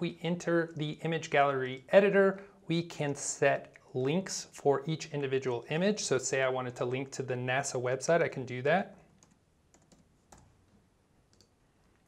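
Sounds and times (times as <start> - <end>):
computer mouse clicks: 9.1 - 10.6, 11.3 - 12.0.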